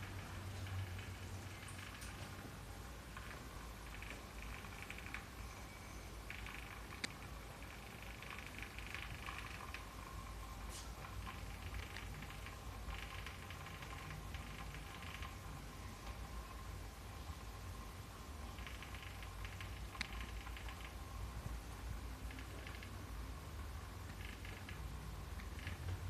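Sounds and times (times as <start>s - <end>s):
faint clicks and rustles: 0.0s - 26.0s
steady low hum: 0.0s - 26.0s.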